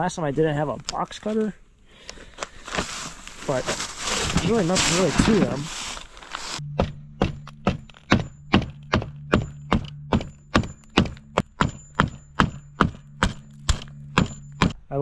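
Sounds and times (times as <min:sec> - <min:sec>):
hammer striking wooden frame: 0:06.8 - 0:14.9.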